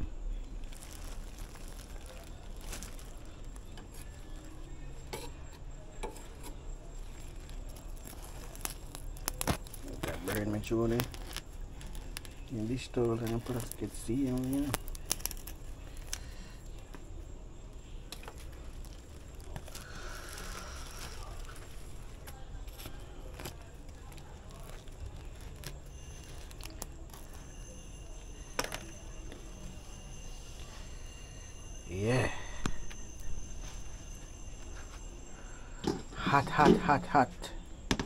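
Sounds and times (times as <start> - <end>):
plastic bag crinkling: 0.3 - 4.8, 6.8 - 17.0, 17.9 - 31.2
knife scraping charred skin: 1.2 - 17.0, 18.1 - 28.6.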